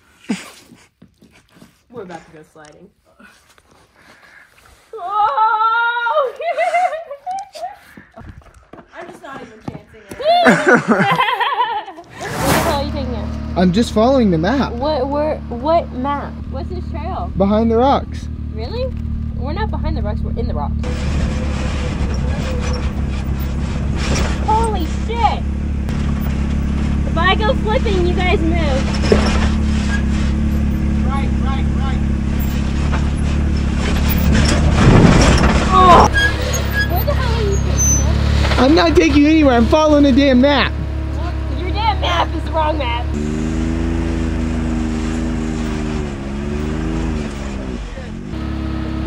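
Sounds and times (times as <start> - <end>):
engine running at low speed: 12.7 - 36.1, 36.9 - 49.0.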